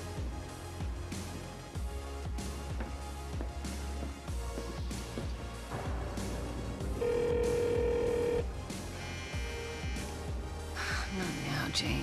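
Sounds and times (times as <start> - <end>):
mobile phone ringing: 7.0 - 10.1.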